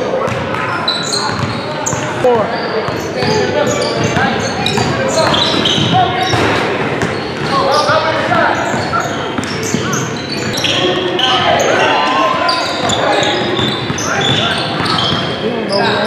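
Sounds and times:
players' voices: 0.0 - 16.0
sneaker squeaks: 0.0 - 16.0.

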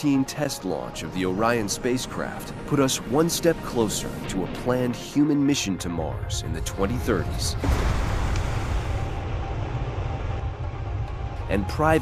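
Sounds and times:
rocket engine rumble with hiss: 0.0 - 12.0.

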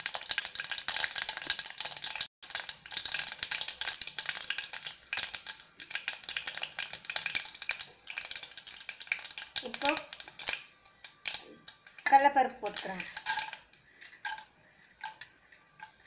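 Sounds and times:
mustard seeds crackling in hot oil: 0.0 - 16.0.

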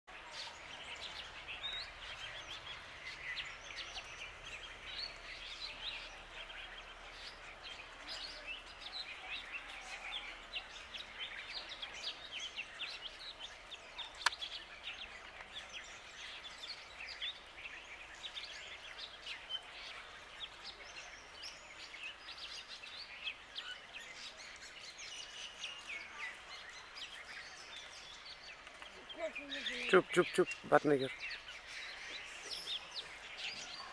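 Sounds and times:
birds chirping: 0.1 - 33.9.

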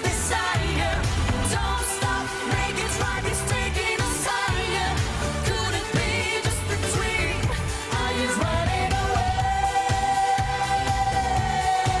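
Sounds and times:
pop duet sung live: 0.0 - 12.0.

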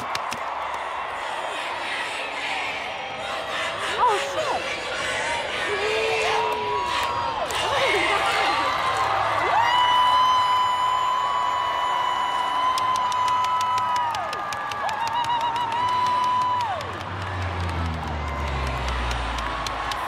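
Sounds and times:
crowd cheering and whooping: 0.0 - 4.6, 5.4 - 20.0.

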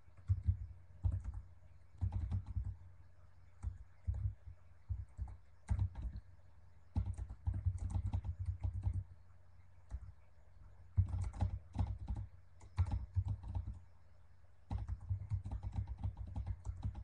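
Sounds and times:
typing on computer keyboard: 0.2 - 1.4, 2.0 - 2.8, 3.6 - 6.3, 6.9 - 9.1, 11.0 - 13.8, 14.7 - 17.0.

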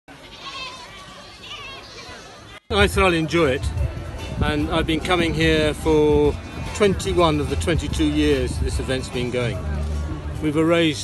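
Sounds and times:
crowd chatter: 0.1 - 11.0.

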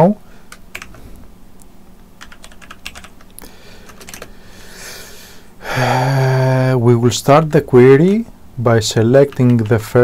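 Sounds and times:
computer keyboard typing: 0.5 - 1.0, 2.2 - 4.3, 9.2 - 10.0.

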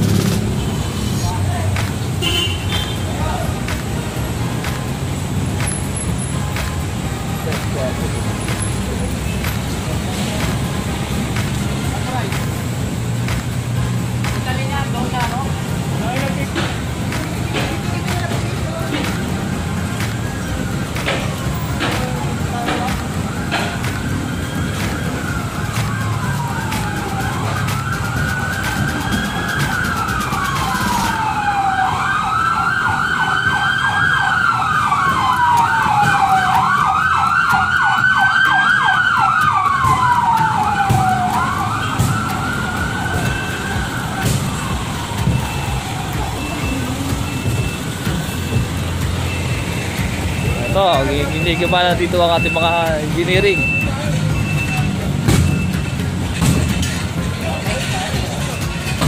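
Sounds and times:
street and engine rumble: 0.0 - 59.0
vehicle siren wailing: 2.2 - 59.0.

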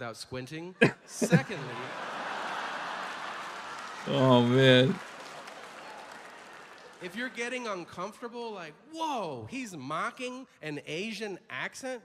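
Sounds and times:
audience laughing and applauding: 1.2 - 7.7.

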